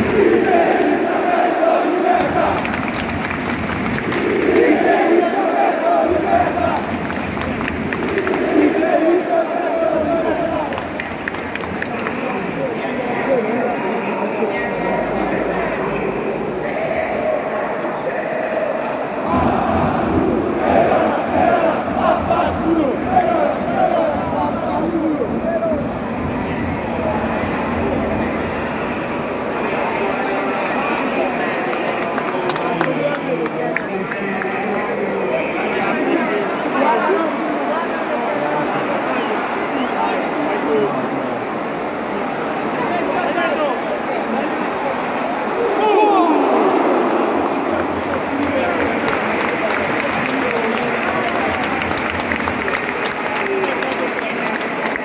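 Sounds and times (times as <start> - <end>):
crowd chanting in unison: 0.0 - 11.0, 15.3 - 26.0
hubbub of many voices: 0.0 - 55.0.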